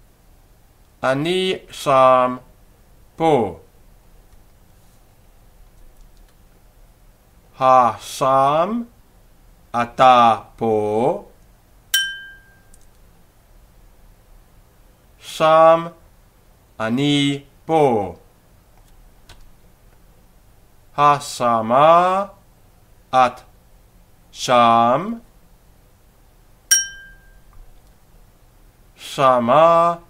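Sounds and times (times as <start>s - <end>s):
small bell ringing: 12.0s - 12.7s, 26.7s - 27.5s.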